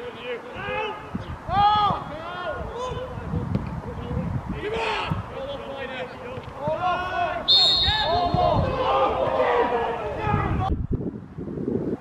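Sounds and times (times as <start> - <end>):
players shouting: 0.0 - 3.3, 4.6 - 10.7
referee's whistle blast: 7.5 - 8.4.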